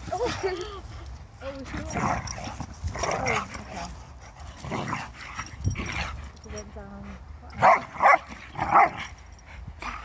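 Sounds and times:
dogs barking: 7.6 - 9.1.

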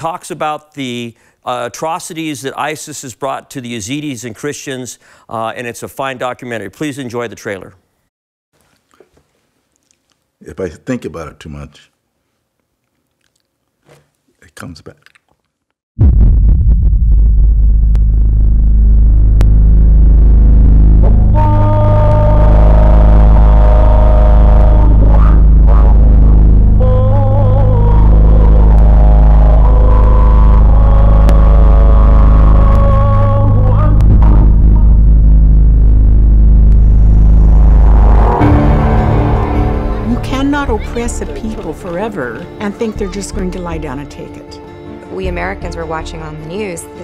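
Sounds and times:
deep cinematic rumble: 16.0 - 42.6.

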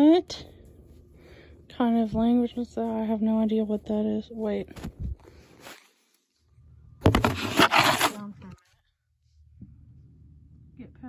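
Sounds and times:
rubbing on microphone: 7.1 - 8.2.

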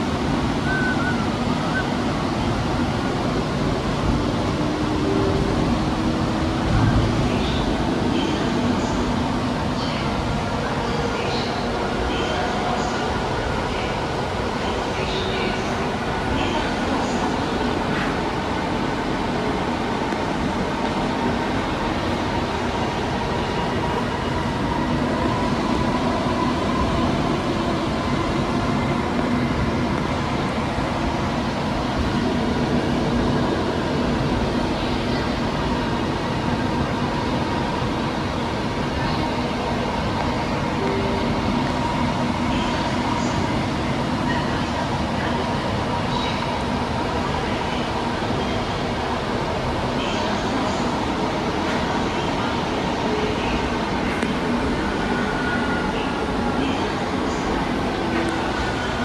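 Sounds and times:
train hum: 0.0 - 59.0
train wheels rumbling on track: 0.0 - 59.0.

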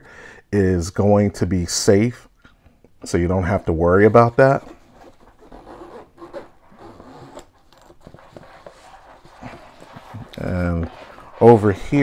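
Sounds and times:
backpack rustling: 4.4 - 12.0.

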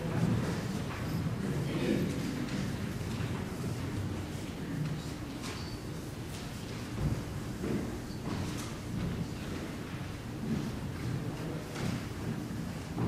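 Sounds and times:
footsteps: 6.3 - 13.0.

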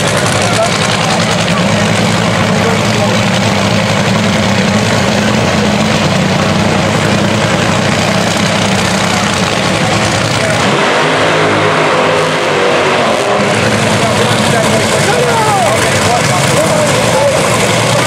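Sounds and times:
dragster engine idling loudly: 0.0 - 18.0.

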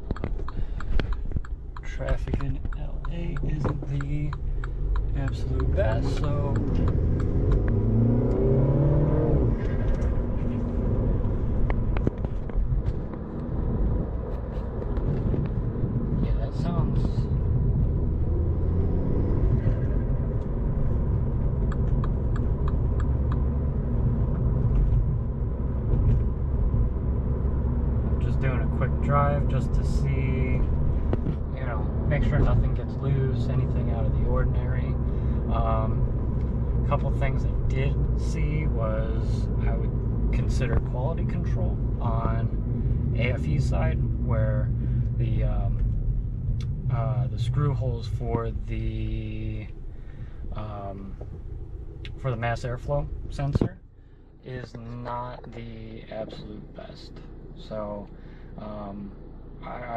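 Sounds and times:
car engine and road noise in cabin: 0.0 - 59.9
indistinct voices: 1.8 - 7.7.

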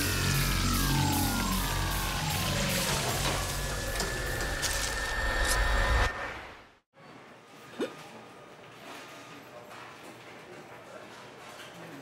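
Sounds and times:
falling sliding notes: 0.0 - 6.6
steady low drone: 0.0 - 6.7.

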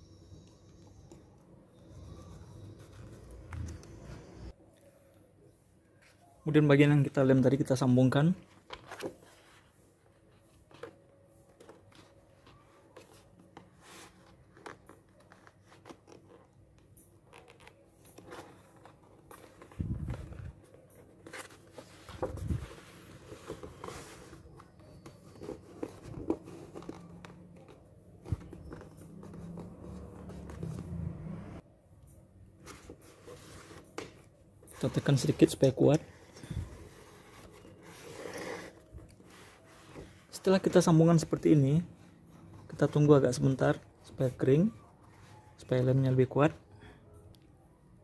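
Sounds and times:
paper rustling and crinkling: 17.2 - 30.8.

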